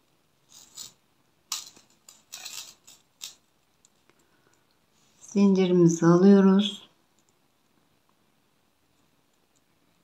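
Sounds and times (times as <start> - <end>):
metal chain and glass beads clinking: 0.5 - 3.5.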